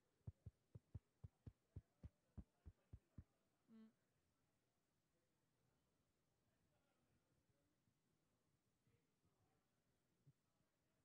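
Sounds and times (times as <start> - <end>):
soft low taps: 0.0 - 3.2.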